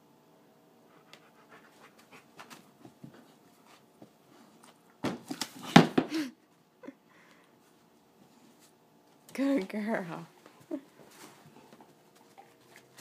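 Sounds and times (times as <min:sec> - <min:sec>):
dog panting: 0:00.9 - 0:03.9.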